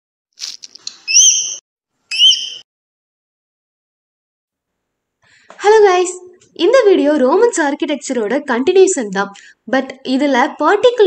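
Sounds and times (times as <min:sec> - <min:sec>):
whistled bird chirps: 0:01.1 - 0:02.7.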